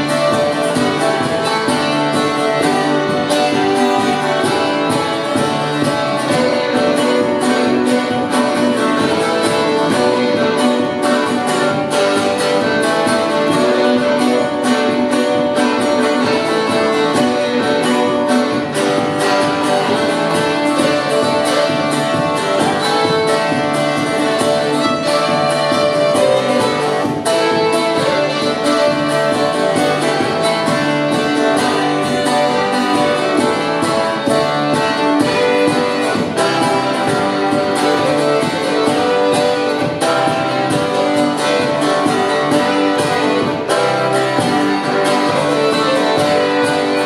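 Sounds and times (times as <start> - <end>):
fiddle melody: 0.0 - 47.0
plucked string instrument: 0.0 - 47.0
strummed acoustic guitar: 0.0 - 47.0.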